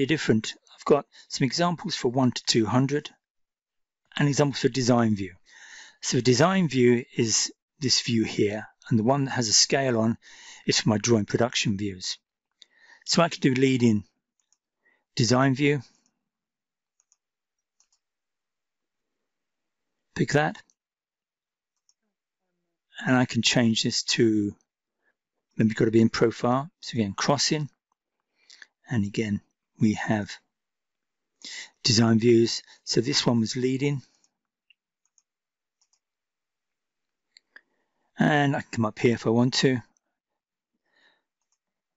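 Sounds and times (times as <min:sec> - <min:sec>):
computer mouse clicks: 0:16.9 - 0:18.0, 0:35.0 - 0:36.0, 0:41.4 - 0:41.7.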